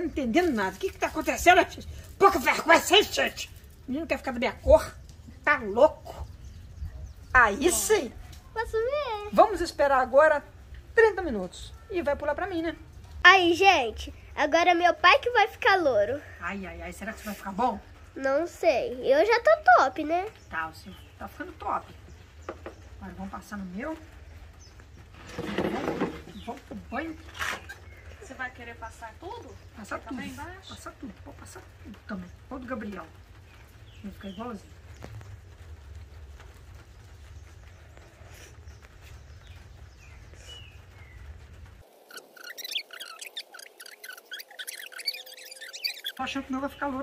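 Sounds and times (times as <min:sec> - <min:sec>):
small birds chirping: 0:00.0 - 0:47.0
bird calling: 0:24.3 - 0:30.5, 0:37.8 - 0:47.0.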